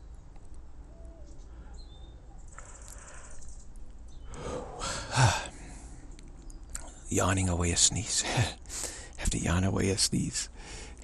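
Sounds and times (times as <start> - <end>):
person yawning: 4.4 - 5.5.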